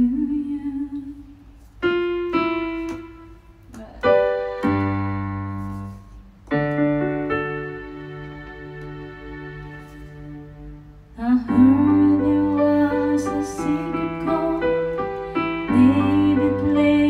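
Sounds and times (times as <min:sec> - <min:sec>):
electronic piano chords: 0:01.8 - 0:10.0.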